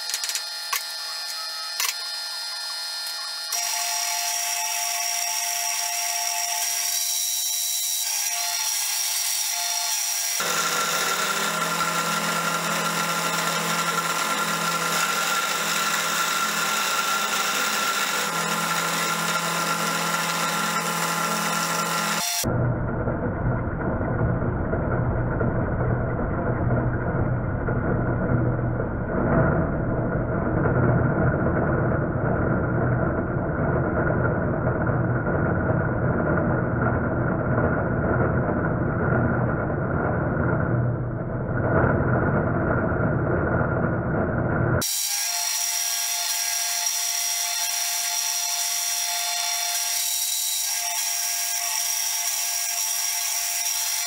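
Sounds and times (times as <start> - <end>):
milling machine cutting brass: 0.0 - 22.5, 44.8 - 54.0.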